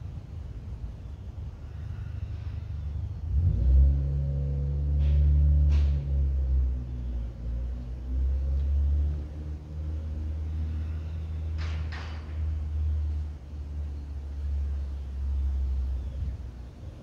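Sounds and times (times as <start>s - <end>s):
low engine rumble: 0.0s - 17.0s.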